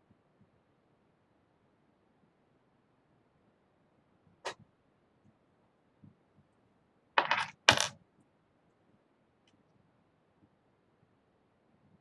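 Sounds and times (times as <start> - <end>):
small hard objects clattering: 7.2 - 7.9.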